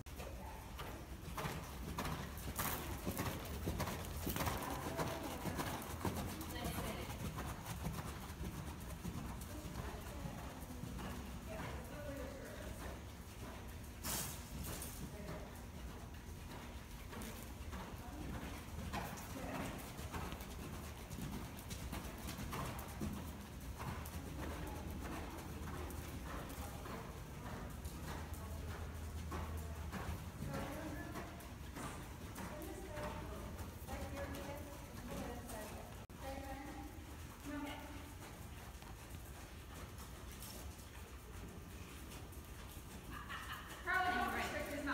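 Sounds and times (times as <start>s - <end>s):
horse hoofbeats on sand: 0.0s - 44.9s.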